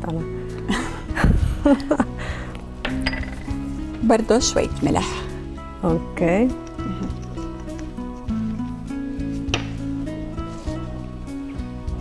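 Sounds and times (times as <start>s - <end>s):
background music: 0.0s - 12.0s
metal spoon clinking ceramic bowl: 2.9s - 3.7s.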